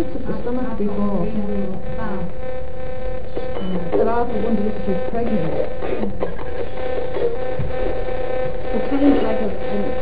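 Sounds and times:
continuous hum: 0.0s - 10.0s
radio sweeping through stations: 0.0s - 10.0s.

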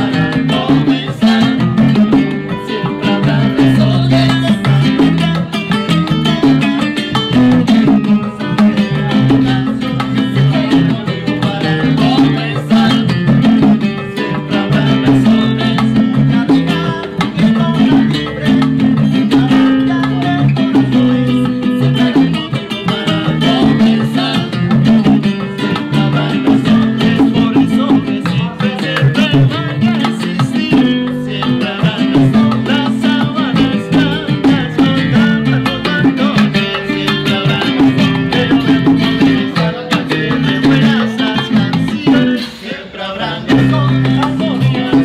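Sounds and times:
electric bass line: 0.0s - 42.4s, 43.4s - 45.0s
acoustic guitar strumming: 0.0s - 45.0s
bongos: 0.0s - 45.0s.

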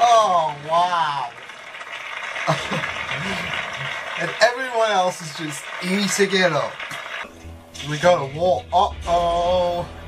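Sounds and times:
man chuckling softly: 2.5s - 3.9s.

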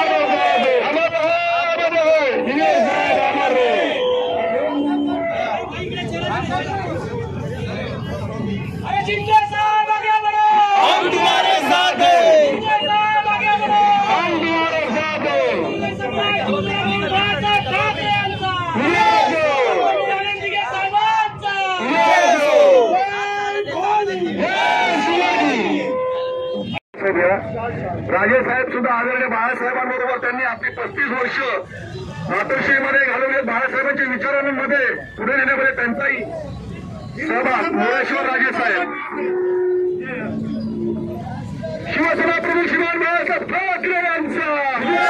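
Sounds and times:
crowd of men talking: 0.0s - 26.0s, 27.0s - 45.0s.

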